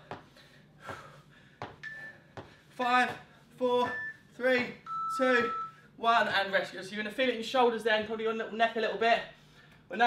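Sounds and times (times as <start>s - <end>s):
feet thumping on rubber floor: 0.0s - 3.3s.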